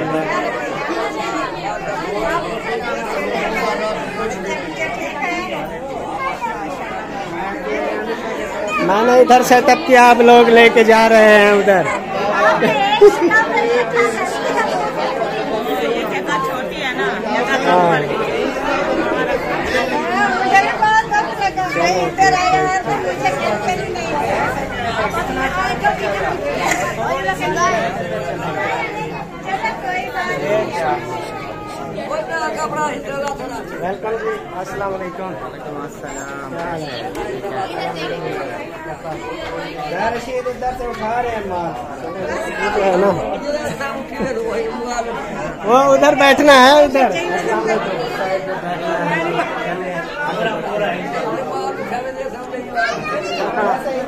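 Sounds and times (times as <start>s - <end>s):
people chattering: 0.0s - 54.0s
people talking at once: 0.0s - 54.0s.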